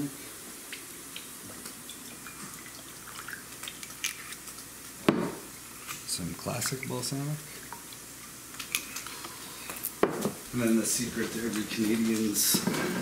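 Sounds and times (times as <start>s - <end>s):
knock on kitchen counter: 5.0s - 5.4s, 10.0s - 10.4s.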